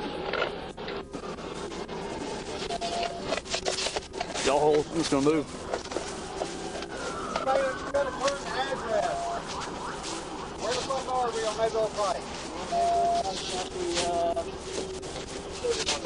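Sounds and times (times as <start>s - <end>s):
short steady beeps: 12.7s - 13.3s.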